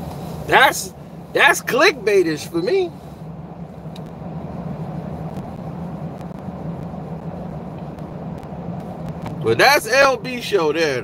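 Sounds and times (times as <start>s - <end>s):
car idling hum: 0.0s - 11.0s.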